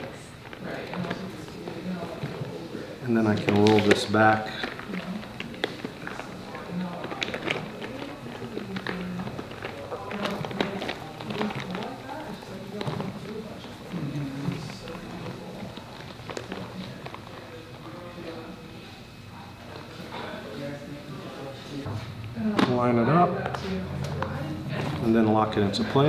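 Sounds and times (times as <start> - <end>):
plastic housing crinkling: 3.2 - 18.1.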